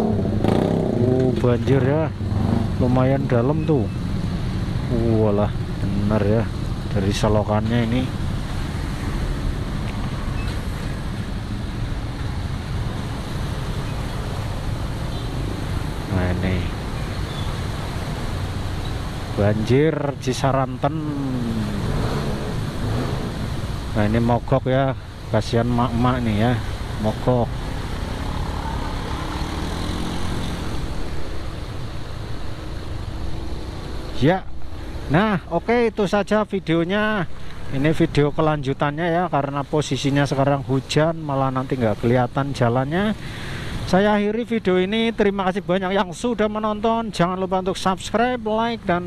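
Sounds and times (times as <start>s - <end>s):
motorbike engine drone: 0.0s - 6.3s, 20.7s - 24.3s
tyres hissing through water: 20.4s - 30.9s, 42.9s - 44.0s.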